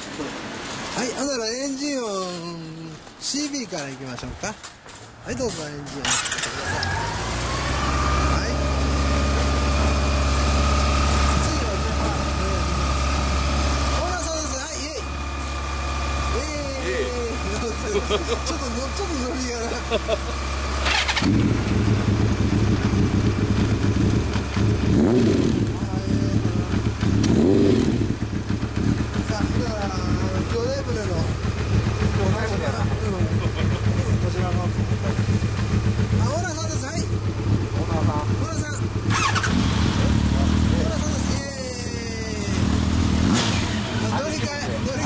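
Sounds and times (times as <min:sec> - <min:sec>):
people talking: 0:01.0 - 0:04.6, 0:05.3 - 0:07.0, 0:08.3 - 0:09.8, 0:11.3 - 0:12.9, 0:13.9 - 0:15.1, 0:16.3 - 0:20.3, 0:25.6 - 0:27.0, 0:29.2 - 0:31.4, 0:32.0 - 0:35.4, 0:36.1 - 0:42.8, 0:43.8 - 0:45.0
motorcycle engine idling and revving: 0:04.8 - 0:45.0.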